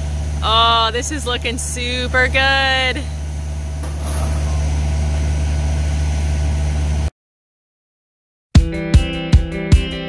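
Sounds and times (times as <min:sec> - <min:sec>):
excavator diesel engine humming: 0:00.0 - 0:07.1.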